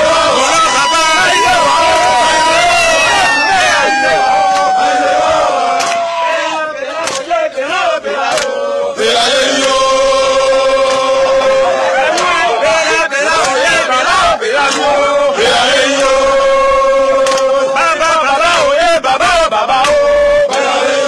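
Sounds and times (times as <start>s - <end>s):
men chanting while marching: 0.0s - 21.0s.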